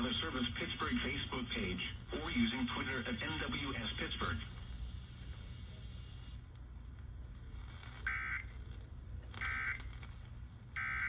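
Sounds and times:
man speaking over radio: 0:00.0 - 0:04.6
low steady hum: 0:00.0 - 0:11.0.

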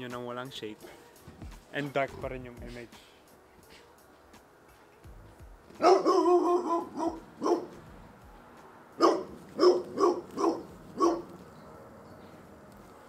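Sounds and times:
dog barking: 0:05.8 - 0:07.8, 0:09.0 - 0:12.0.

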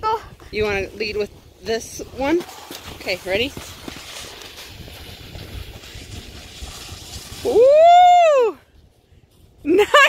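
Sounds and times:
rustling movement in snow: 0:00.6 - 0:10.0
person cheering whooo: 0:07.4 - 0:08.6.

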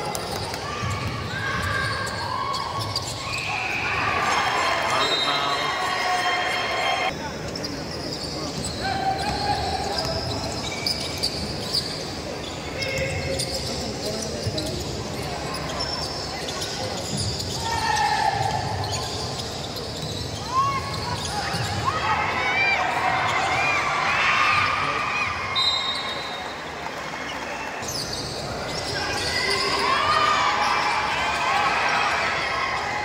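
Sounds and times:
sneakers squeaking on court: 0:00.0 - 0:06.0, 0:07.1 - 0:22.0, 0:27.3 - 0:29.9
voices echoing in gym: 0:00.0 - 0:33.0.

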